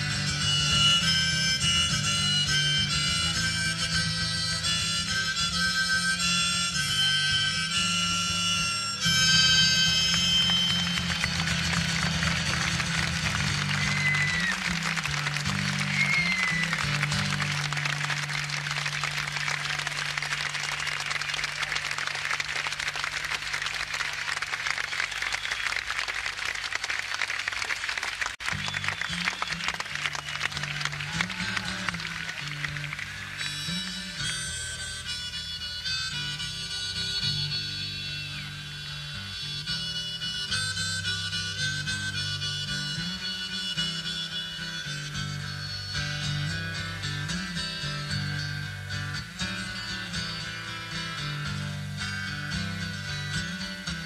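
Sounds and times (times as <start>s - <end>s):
band playing low held notes: 0.0s - 27.3s, 28.0s - 54.0s
short whistles: 0.4s - 26.7s, 28.4s - 30.9s
audience applauding and cheering: 9.6s - 33.8s.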